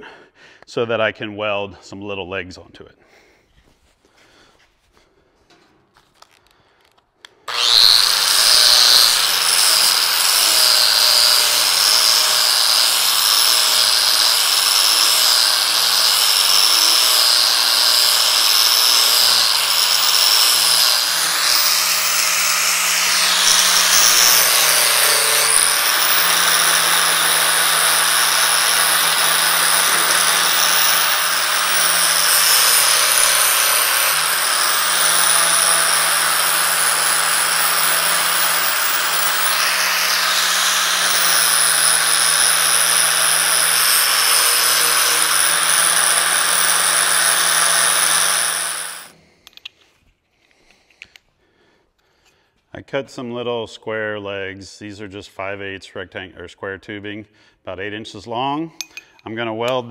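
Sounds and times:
angle grinder grinding steel: 7.4 - 49.3.

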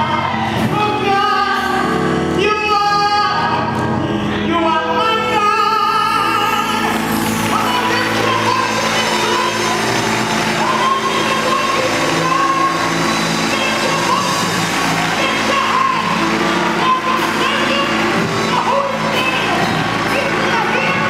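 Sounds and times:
congregation calling out: 0.0 - 21.0
musical accompaniment: 0.0 - 21.0
congregation clapping: 5.9 - 21.0.

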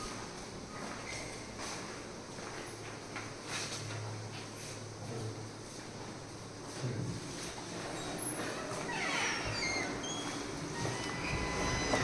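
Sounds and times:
door hinges squeaking: 8.0 - 12.0.

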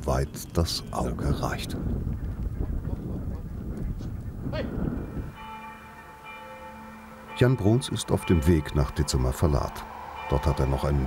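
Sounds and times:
held chord of tones: 4.8 - 11.0.

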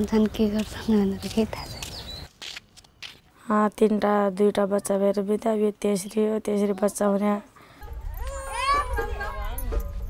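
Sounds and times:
small child crying: 8.1 - 9.6.

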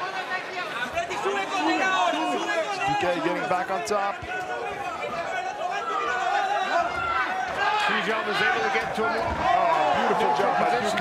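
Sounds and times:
voices talking and shouting: 0.0 - 11.0.

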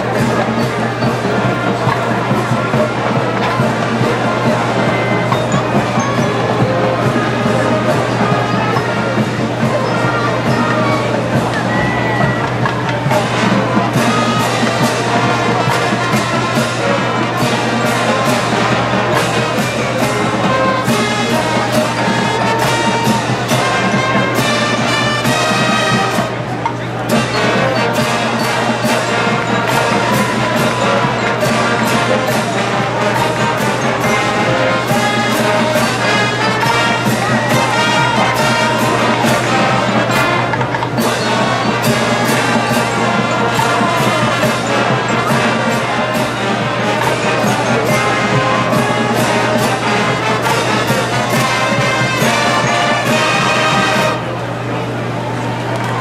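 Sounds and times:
marching band playing: 0.0 - 56.0
run of drum strokes: 0.0 - 56.0.

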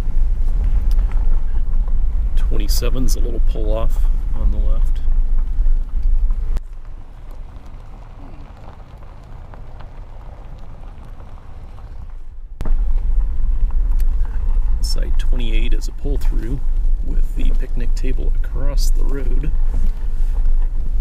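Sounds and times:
vehicle engine and road rumble: 0.0 - 21.0.

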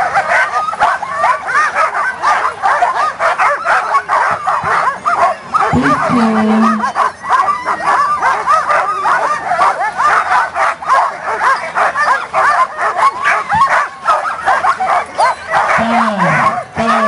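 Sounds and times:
dogs barking and yelping: 0.0 - 17.0.

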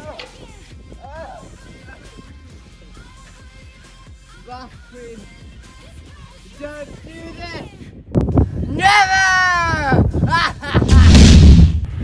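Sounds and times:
low rumbling explosion boom: 10.8 - 12.0.

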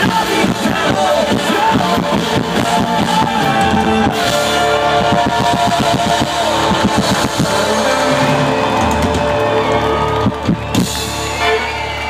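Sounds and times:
drums: 0.0 - 12.0
guitar chords: 0.0 - 12.0.

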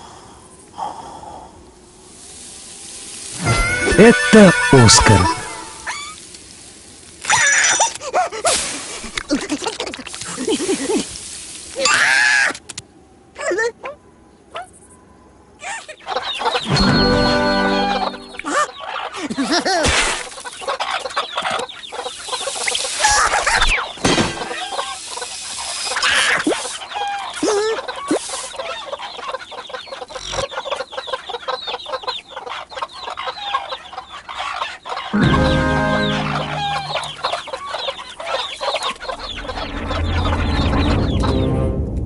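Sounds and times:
cartoon character vocalisations: 3.4 - 6.0
background music: 16.7 - 18.5, 35.2 - 37.4
low pitched drone: 35.2 - 37.4.

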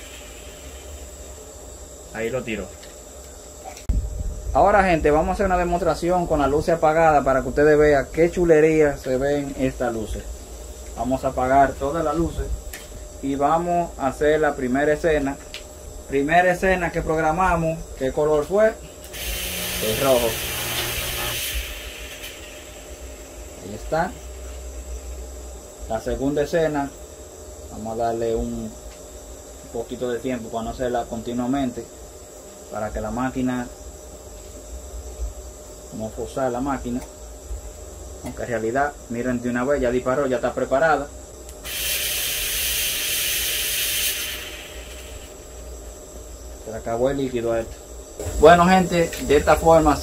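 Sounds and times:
fog machines hissing: 0.0 - 2.2, 18.8 - 25.4, 41.6 - 46.7
smoke machine hissing: 0.0 - 3.9, 5.7 - 36.0, 41.2 - 50.0.

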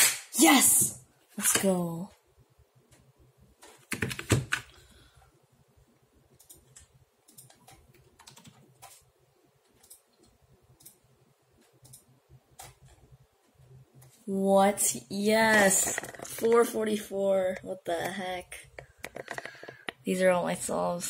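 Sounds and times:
computer keyboard clicking: 3.6 - 4.7, 6.4 - 9.0.

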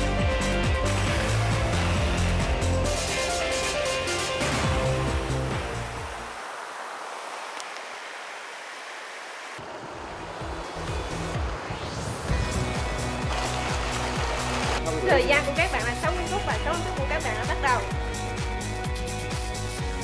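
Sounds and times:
music with steady beat: 0.0 - 5.8, 12.3 - 20.0
rising sweep: 0.8 - 16.4.

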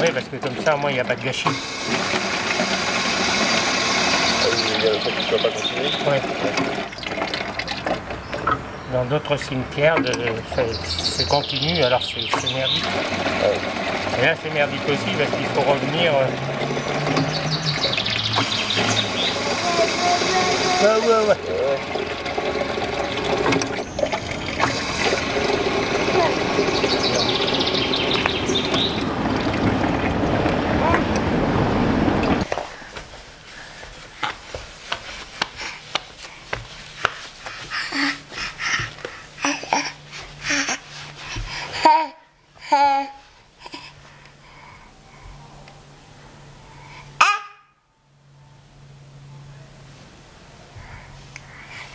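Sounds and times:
water splashing from pump spout: 0.0 - 32.6.

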